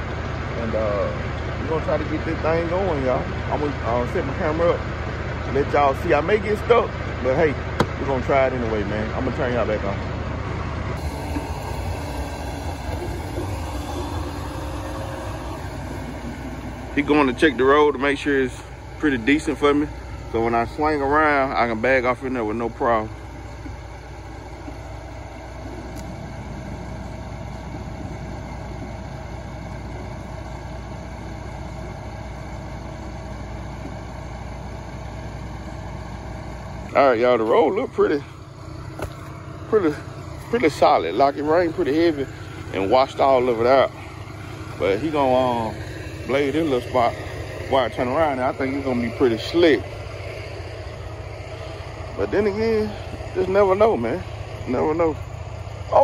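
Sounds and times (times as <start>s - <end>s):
diesel engine idling: 0.0s - 56.0s.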